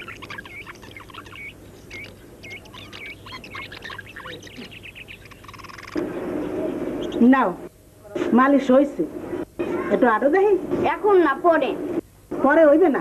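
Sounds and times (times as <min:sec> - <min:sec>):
birds chirping: 0:00.0 - 0:07.7.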